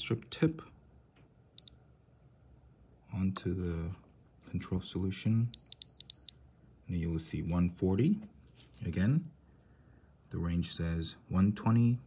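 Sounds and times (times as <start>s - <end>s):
short high meter beep: 5.5s - 6.4s.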